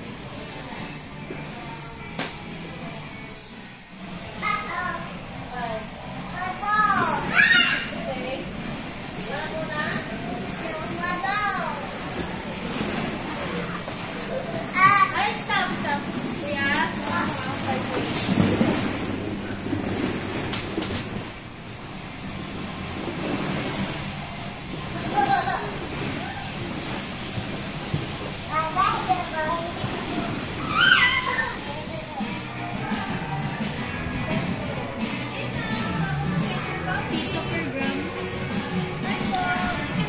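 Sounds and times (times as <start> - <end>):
child's high-pitched cry: 30.6 - 31.8.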